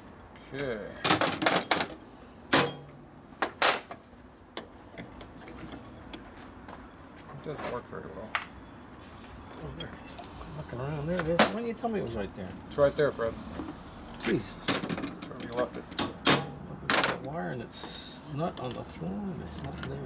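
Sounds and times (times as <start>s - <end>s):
metal clutch plates clinking: 4.6s - 6.4s, 14.2s - 17.3s, 18.4s - 20.0s.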